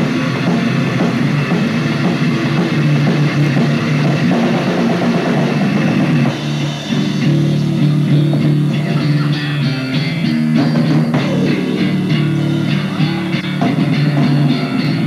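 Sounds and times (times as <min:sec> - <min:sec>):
bass guitar: 0:00.0 - 0:15.0
drum kit: 0:00.0 - 0:15.0
electric guitar: 0:00.0 - 0:15.0.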